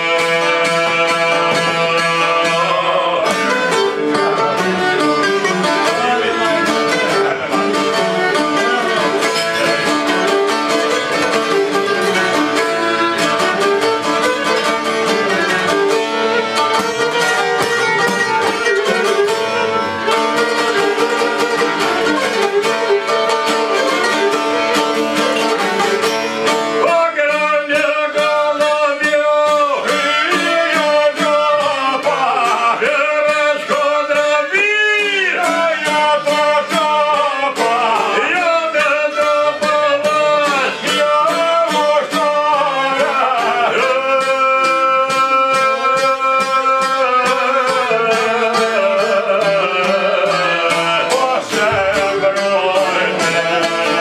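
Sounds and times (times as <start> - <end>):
bowed violin: 0.0 - 27.5
plucked strings: 0.0 - 54.0.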